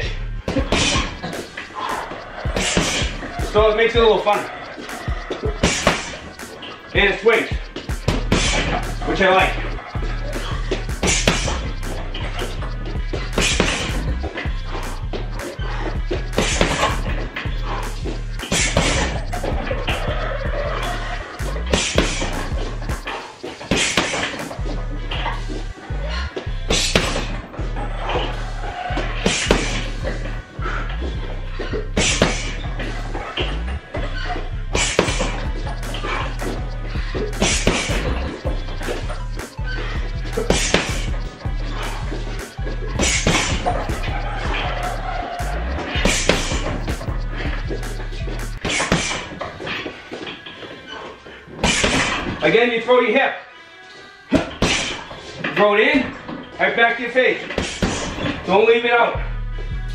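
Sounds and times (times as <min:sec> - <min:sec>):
background music with bass line: 0:00.0 - 0:50.2, 0:57.0 - 0:59.9.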